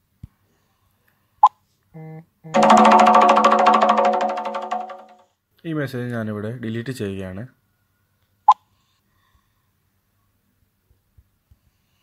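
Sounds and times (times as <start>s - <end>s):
sustained musical chime: 2.6s - 5.1s.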